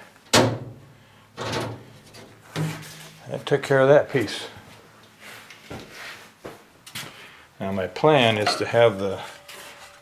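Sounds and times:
faint background noise: 0.0s - 10.0s.

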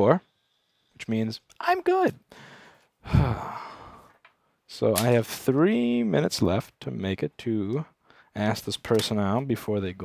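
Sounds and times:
soft breath: 2.3s - 4.2s
man sighing into microphone: 3.0s - 4.2s.

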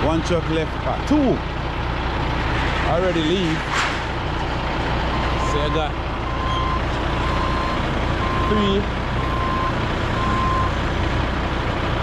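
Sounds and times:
low engine rumble: 0.0s - 12.0s
vehicle backup alarm beeping: 5.1s - 10.8s.

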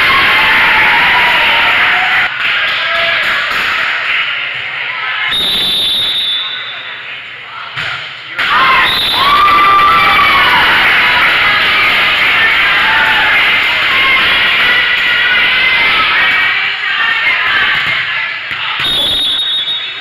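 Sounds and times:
girls cheering and shouting: 0.0s - 2.3s, 8.4s - 18.8s.

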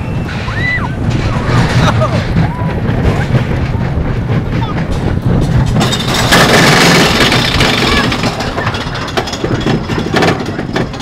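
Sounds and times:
roller coaster rattling on track: 0.0s - 11.0s.

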